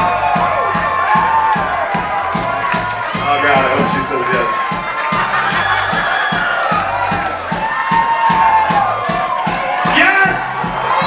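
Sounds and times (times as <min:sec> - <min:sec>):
crowd cheering: 0:00.0 - 0:11.0
live band music: 0:02.1 - 0:07.3.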